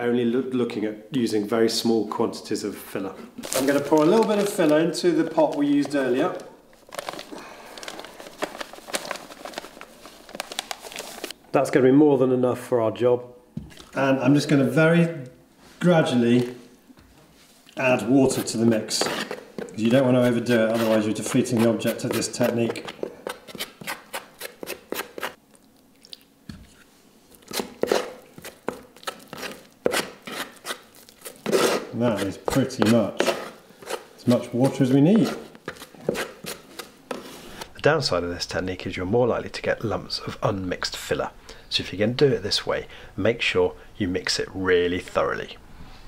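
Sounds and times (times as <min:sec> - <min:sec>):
paper bag crackling and rustling: 0:03.4 - 0:11.4
metal knife scraping filler in pot: 0:29.3 - 0:32.0.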